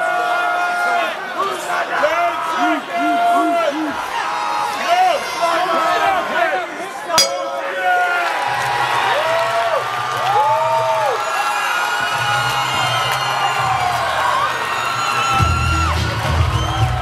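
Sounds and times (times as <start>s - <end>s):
crowd cheering and whooping: 2.1s - 5.6s, 8.2s - 17.0s
long rising-and-falling shouts: 2.4s - 4.4s.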